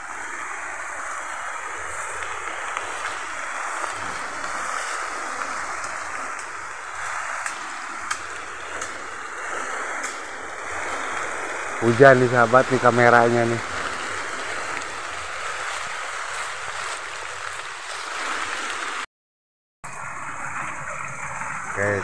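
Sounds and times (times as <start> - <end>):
rain on leaves: 0.0 - 19.1, 19.8 - 22.0.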